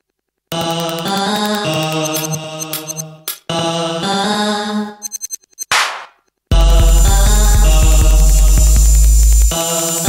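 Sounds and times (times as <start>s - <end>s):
electronic music with sustained tones: 6.5s - 10.0s.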